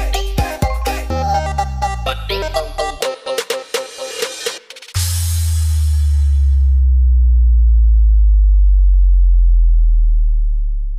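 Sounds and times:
sinking sub-bass note: 0:05.0 - 0:10.9.

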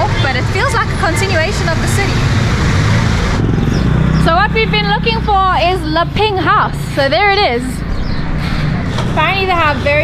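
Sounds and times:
motorcycle and car engines passing: 0:00.0 - 0:10.0.

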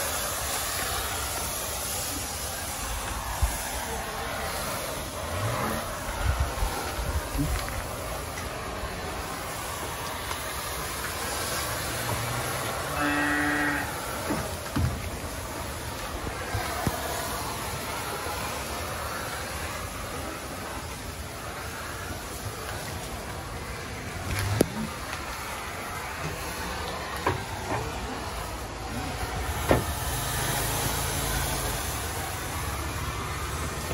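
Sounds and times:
fogging machine hissing drone: 0:00.0 - 0:33.9
cow mooing: 0:12.8 - 0:14.0.

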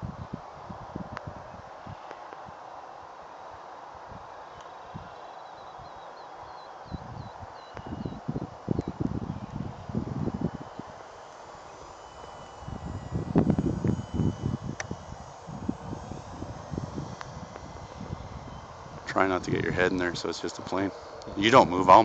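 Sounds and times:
wind buffeting microphone: 0:00.0 - 0:02.6, 0:03.9 - 0:06.0, 0:06.8 - 0:22.0
faint electric motor whine: 0:00.0 - 0:22.0.

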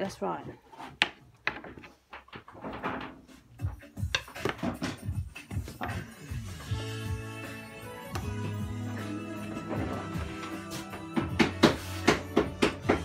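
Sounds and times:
background music: 0:03.4 - 0:13.0.

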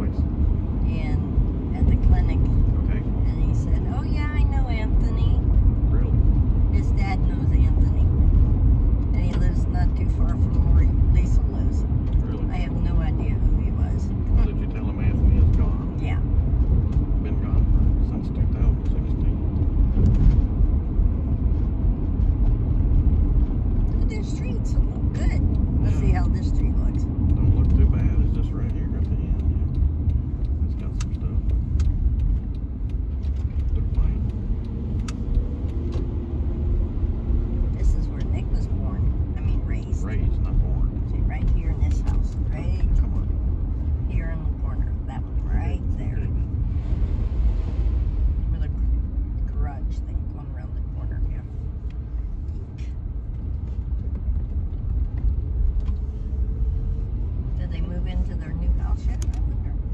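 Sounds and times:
car cabin road and engine rumble: 0:00.0 - 0:59.9.

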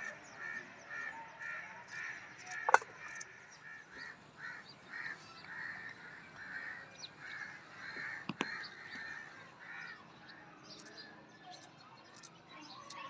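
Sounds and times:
birds calling: 0:00.0 - 0:13.0
sharp knock: 0:02.7 - 0:03.0.

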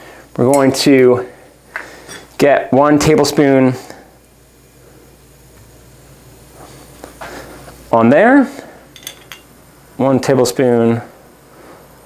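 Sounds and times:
faint hiss: 0:00.0 - 0:12.0
low steady hum: 0:00.0 - 0:12.0.

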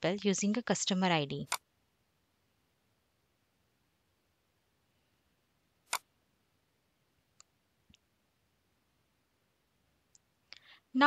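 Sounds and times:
computer mouse clicks: 0:01.4 - 0:01.6, 0:05.9 - 0:06.1.

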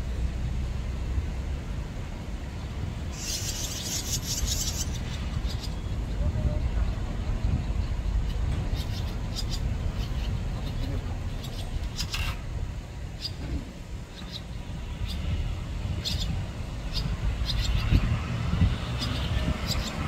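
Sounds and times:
steady low rumble: 0:00.0 - 0:20.0
swallows twittering: 0:03.1 - 0:12.4, 0:13.1 - 0:20.0.

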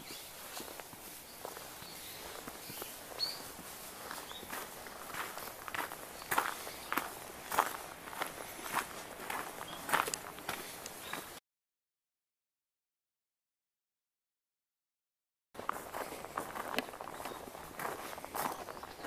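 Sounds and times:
footsteps on gravel: 0:00.0 - 0:11.4, 0:15.6 - 0:19.0.

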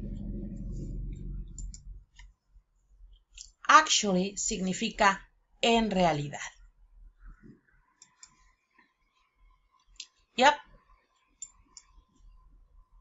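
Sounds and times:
faint clicks: 0:11.2 - 0:12.3.

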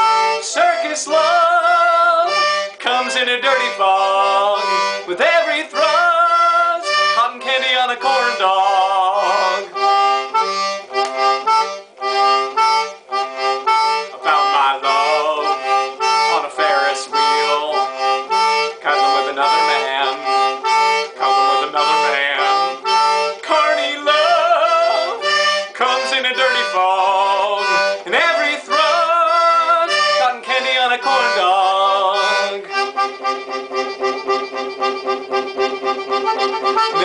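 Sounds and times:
toy concertina melody: 0:00.0 - 0:37.0.

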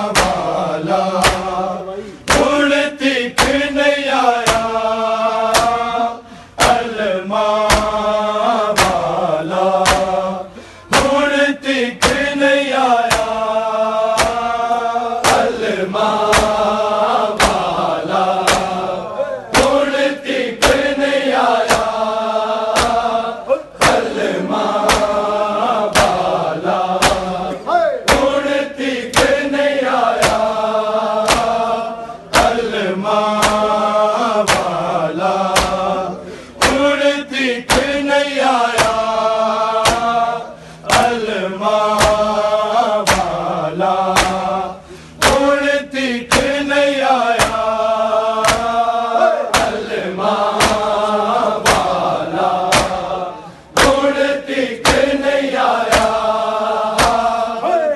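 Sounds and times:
men chanting in unison: 0:00.0 - 0:57.9
hands slapping bare chests: 0:00.1 - 0:01.6, 0:02.2 - 0:02.6, 0:03.4 - 0:03.7, 0:04.3 - 0:04.8, 0:05.5 - 0:05.9, 0:06.6 - 0:10.2, 0:10.9 - 0:11.3, 0:12.0 - 0:13.5, 0:14.1 - 0:18.9, 0:19.5 - 0:22.1, 0:22.7 - 0:23.2, 0:23.8 - 0:36.0, 0:36.6 - 0:39.2, 0:39.8 - 0:40.2, 0:40.9 - 0:41.3, 0:41.9 - 0:42.4, 0:43.0 - 0:44.6, 0:45.2 - 0:45.6, 0:46.3 - 0:46.6, 0:47.3 - 0:47.8, 0:48.4 - 0:48.8, 0:49.5 - 0:53.2, 0:53.8 - 0:54.2, 0:54.8 - 0:57.4.

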